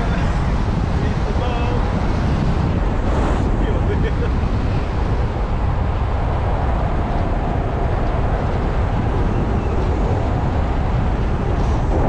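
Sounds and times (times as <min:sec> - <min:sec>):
car road and wind noise: 0:00.0 - 0:12.0.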